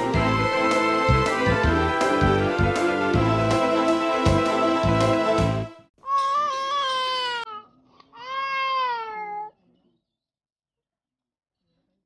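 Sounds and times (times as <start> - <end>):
theme music: 0.0 - 5.9
infant crying: 6.0 - 9.5.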